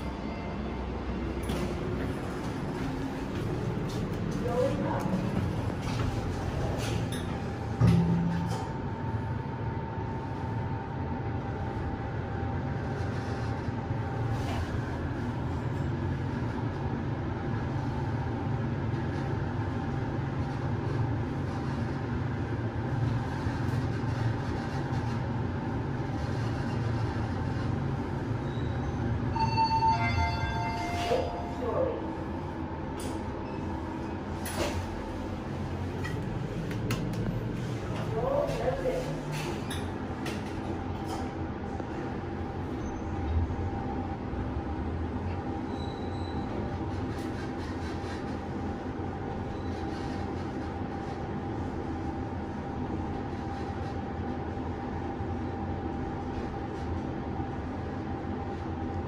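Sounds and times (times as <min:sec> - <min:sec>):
lift running rumble: 0:00.0 - 0:59.0.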